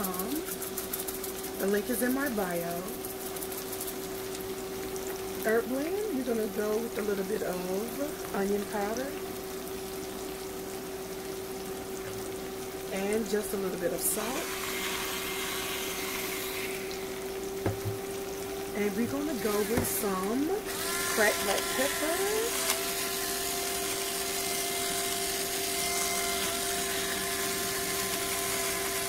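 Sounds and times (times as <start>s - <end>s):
vegetables sizzling in a skillet: 0.0s - 29.0s
appliance motor humming: 11.7s - 29.0s.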